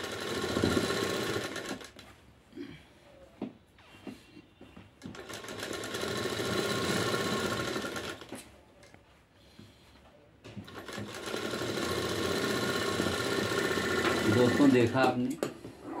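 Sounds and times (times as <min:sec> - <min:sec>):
sewing machine running: 0:00.0 - 0:02.0, 0:05.1 - 0:08.3, 0:10.6 - 0:15.0.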